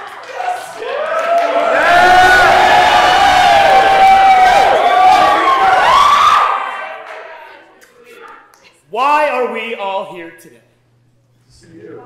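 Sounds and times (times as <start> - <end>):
audience cheering and whooping: 0.0 - 7.6.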